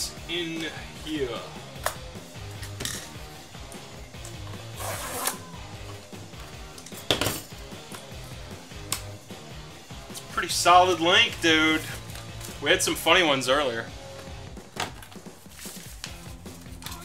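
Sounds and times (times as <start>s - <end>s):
low background music: 0.0s - 17.0s
paper envelope rustling: 15.0s - 17.0s.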